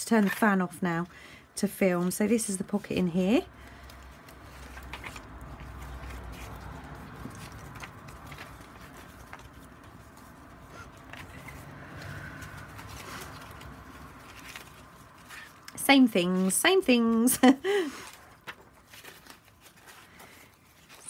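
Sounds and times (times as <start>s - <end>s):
paper pages rustling: 1.9s - 21.0s.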